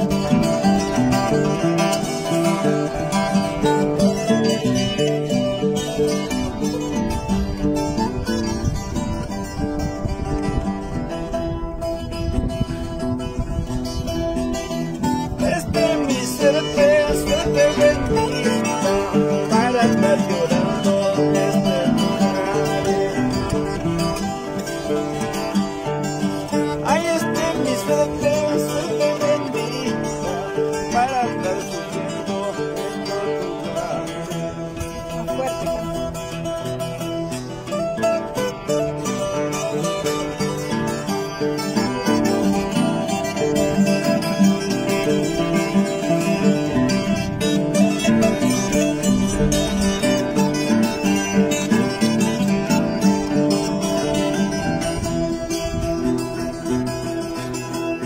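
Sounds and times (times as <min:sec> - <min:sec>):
acoustic guitar folk music: 0:00.0 - 0:58.0.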